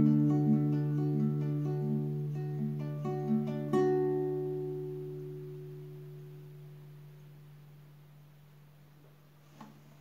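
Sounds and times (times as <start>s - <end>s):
classical guitar chord ringing: 0.0s - 8.7s.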